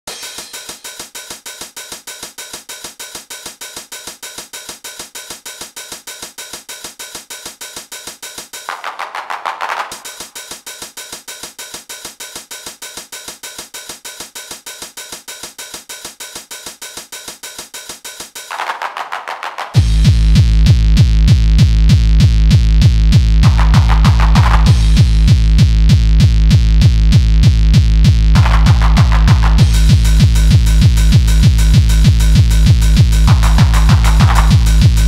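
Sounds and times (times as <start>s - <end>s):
electronic hi-hat and cymbal pattern: 0.0s - 35.0s.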